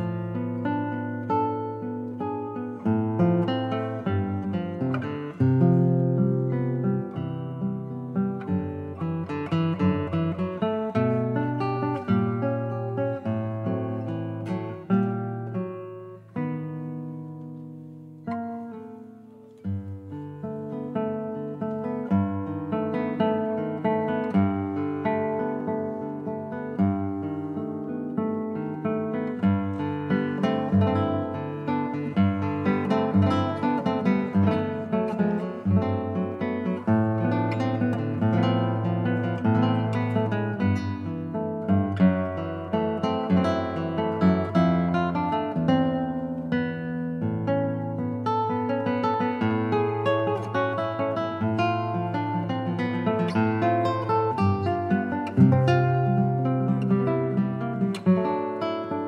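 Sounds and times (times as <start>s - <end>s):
classical guitar fingerstyle: 0.0s - 59.0s.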